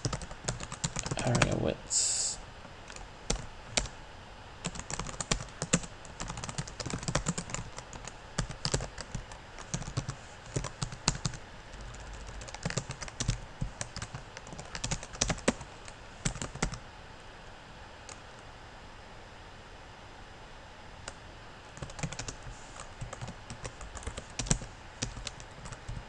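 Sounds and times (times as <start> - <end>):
typing on computer keyboard: 0.0 - 1.5, 4.6 - 16.8, 21.8 - 22.4, 23.0 - 26.0.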